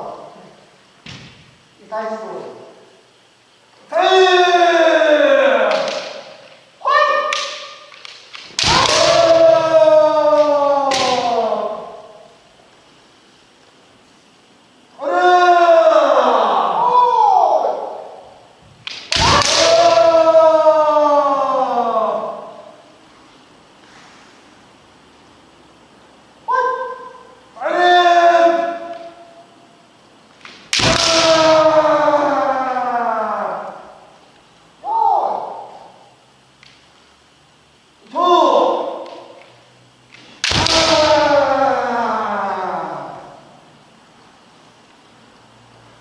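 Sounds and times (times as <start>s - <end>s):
people shouting falling in pitch: 3.9s - 6.2s, 6.8s - 8.0s, 8.6s - 12.2s, 15.0s - 18.2s, 19.1s - 22.6s, 26.5s - 29.3s, 30.7s - 34.0s, 40.4s - 43.5s.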